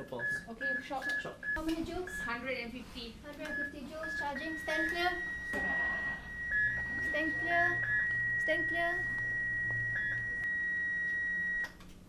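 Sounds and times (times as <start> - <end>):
defibrillator steady high tone: 3.4 - 11.7.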